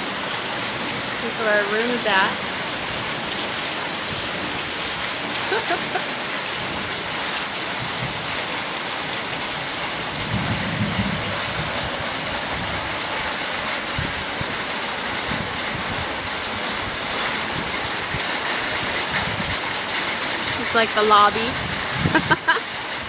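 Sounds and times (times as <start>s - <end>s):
heavy rain on pavement and roofs: 0.0s - 23.0s.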